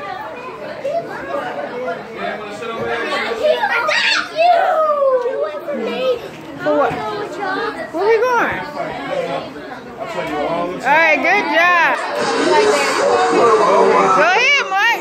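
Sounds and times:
people chattering at play: 0.0s - 15.0s.

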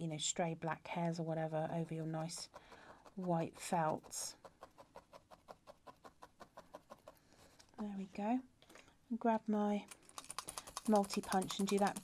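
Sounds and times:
felting needle soft clicks: 9.8s - 12.0s.

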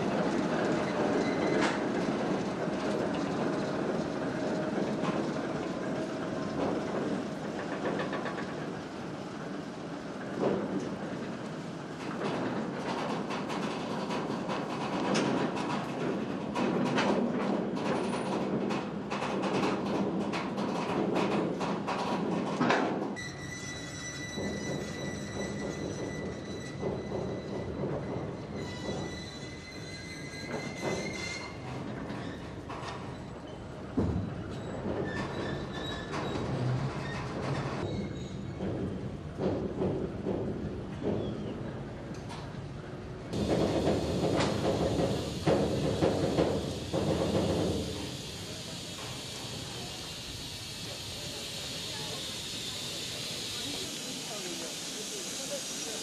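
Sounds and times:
railcar clattering on track: 0.0s - 56.0s
railcar rumble: 0.0s - 56.0s.

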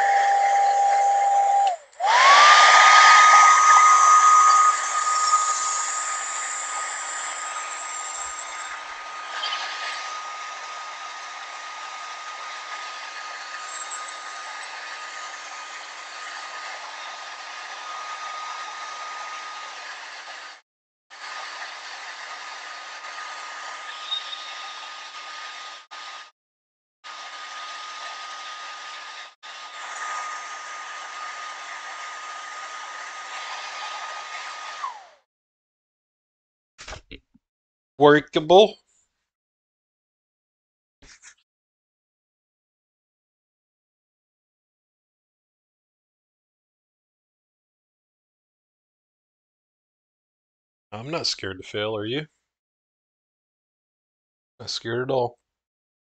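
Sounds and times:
hair dryer blowing: 0.0s - 26.3s, 27.1s - 35.2s.

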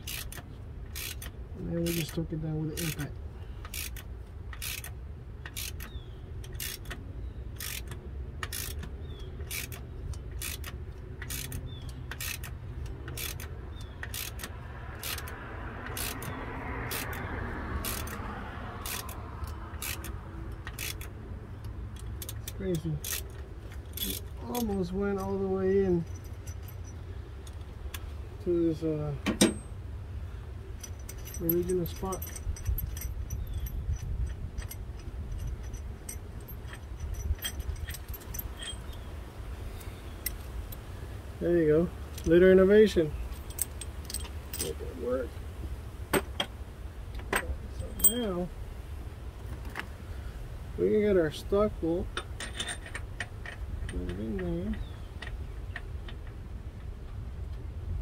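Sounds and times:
hand ratchet clicking: 0.0s - 2.2s, 2.8s - 7.0s, 7.6s - 18.2s, 18.8s - 21.2s, 21.9s - 25.4s, 30.8s - 39.0s.

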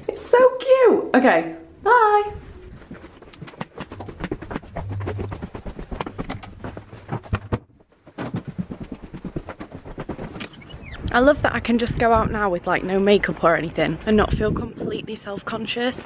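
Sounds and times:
footsteps: 2.4s - 11.3s
low rumble: 3.8s - 7.2s.

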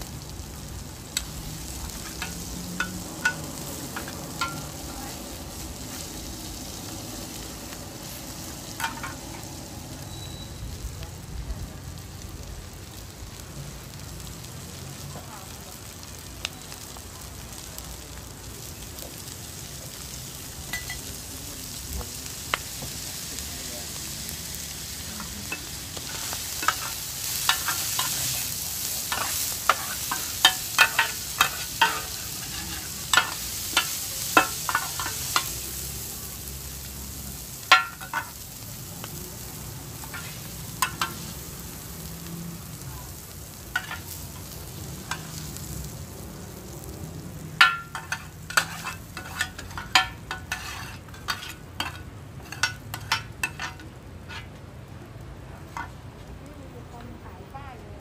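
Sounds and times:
omelette sizzling in oil: 0.0s - 56.4s
metal spatulas scraping pan: 8.8s - 9.2s, 25.5s - 35.5s, 43.8s - 44.2s, 47.6s - 54.5s.

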